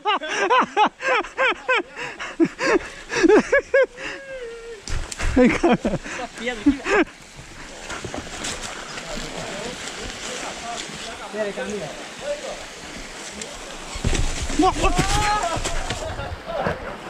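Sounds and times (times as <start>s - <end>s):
stream over small waterfall: 0.0s - 17.0s.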